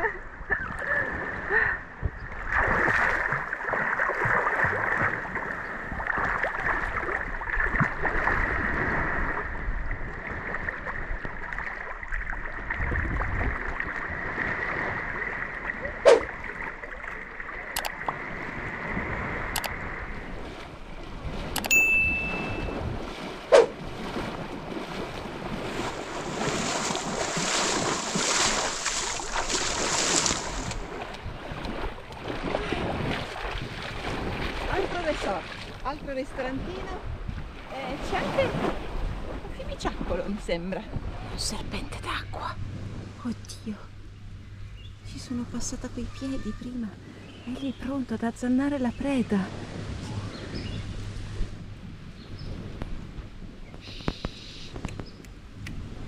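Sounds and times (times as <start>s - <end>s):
wind on microphone: 0.0s - 11.6s, 12.5s - 15.2s, 17.8s - 43.5s, 44.8s - 56.0s
water splashing and sloshing: 0.0s - 44.2s, 45.2s - 53.8s
bell-like ding: 21.6s - 22.8s.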